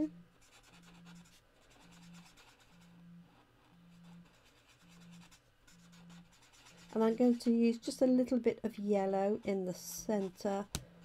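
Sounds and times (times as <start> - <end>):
marker scratching on cardstock: 0.4 - 7.8.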